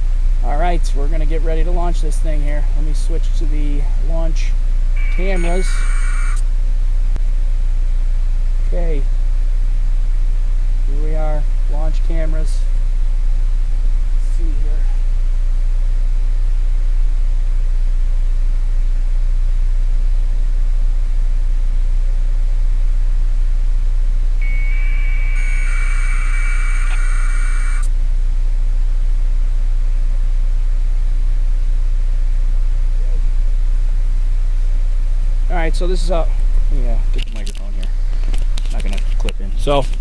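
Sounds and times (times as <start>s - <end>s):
electronic tones: 5.0s - 6.4s, 24.4s - 27.9s.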